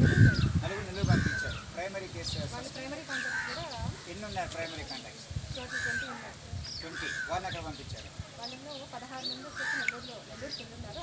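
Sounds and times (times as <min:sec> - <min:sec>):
crows cawing: 0:00.0 - 0:01.6, 0:03.0 - 0:04.1, 0:05.6 - 0:07.6, 0:09.4 - 0:10.8
people talking faintly: 0:00.4 - 0:11.0.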